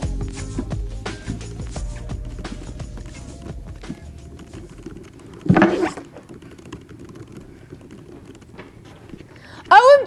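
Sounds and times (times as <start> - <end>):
laptop keyboard typing: 2.3 - 9.6.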